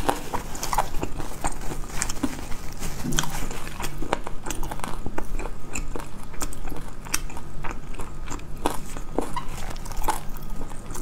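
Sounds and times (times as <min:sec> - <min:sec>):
chewing crispy fried chicken: 0:00.0 - 0:11.0.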